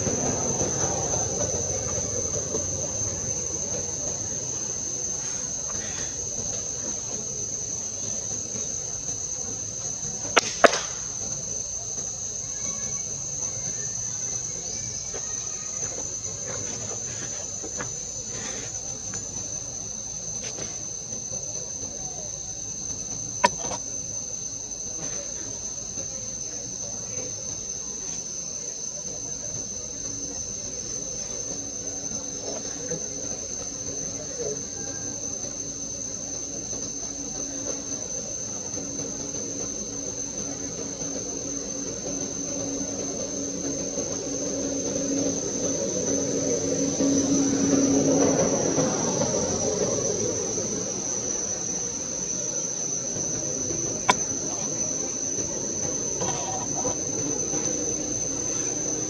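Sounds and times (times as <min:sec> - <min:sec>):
high-pitched insect chorus: 0:00.0 - 0:59.0.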